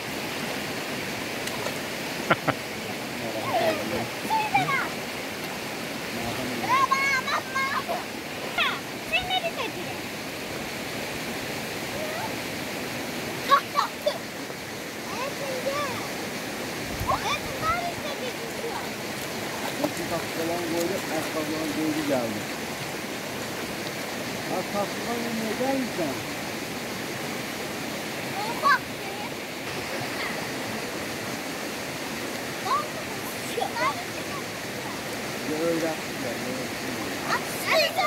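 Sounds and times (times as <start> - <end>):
river rushing: 0.0 - 38.0.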